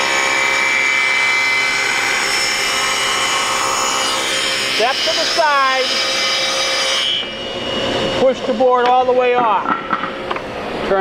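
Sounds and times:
table saw ripping wood: 0.0 - 10.2.

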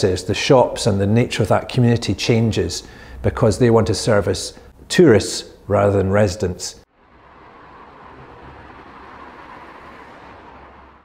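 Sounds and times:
city traffic passing: 0.0 - 5.7, 6.8 - 11.0.

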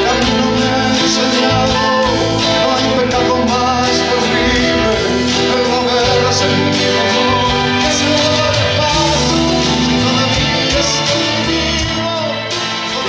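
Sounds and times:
acoustic guitar strumming: 0.0 - 13.0
man singing: 0.0 - 13.0.

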